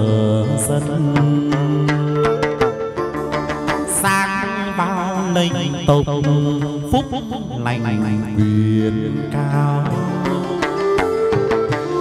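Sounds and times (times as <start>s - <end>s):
plucked lute: 0.0s - 12.0s.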